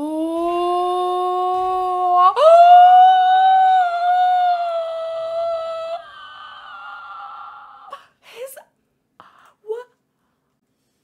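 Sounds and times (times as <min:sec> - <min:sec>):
woman squealing: 0:00.4 - 0:08.1.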